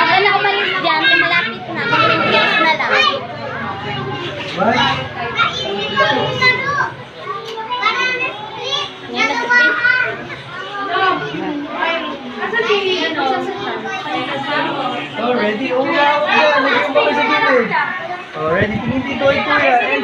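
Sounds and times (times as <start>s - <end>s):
children chattering and calling out: 0.0s - 20.0s.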